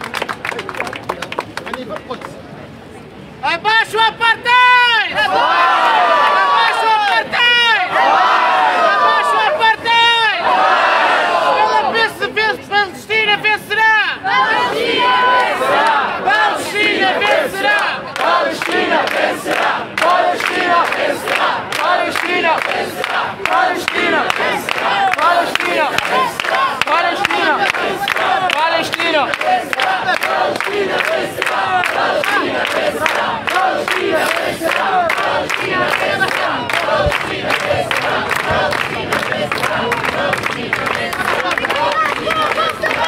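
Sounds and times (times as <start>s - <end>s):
crowd shouting a chant: 4.1s - 12.4s, 13.3s - 43.0s
rhythmic clapping: 17.2s - 43.0s.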